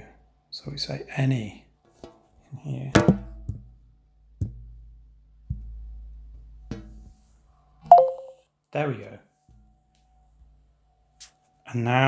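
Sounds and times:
two-note electronic tone: 7.9 - 8.4.

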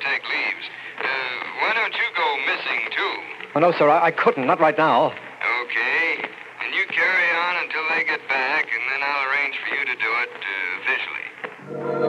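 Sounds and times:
man speaking over telephone: 0.0 - 11.5.

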